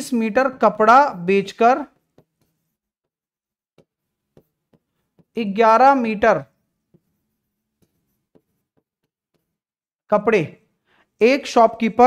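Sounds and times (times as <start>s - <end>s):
pen tapping on writing board: 1.9s - 5.4s, 7.8s - 9.7s.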